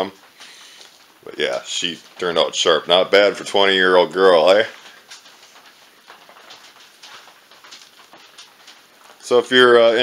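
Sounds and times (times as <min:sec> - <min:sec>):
light irregular ticks and taps: 0:00.0 - 0:10.0.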